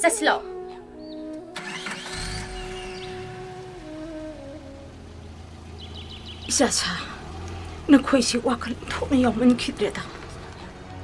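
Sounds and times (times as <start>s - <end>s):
background music held notes: 0.0s - 11.0s
engine starting and rumbling: 1.5s - 11.0s.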